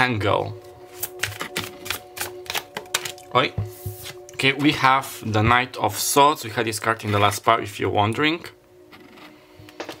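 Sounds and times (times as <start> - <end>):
cards shuffled and dealt: 0.9 - 4.3.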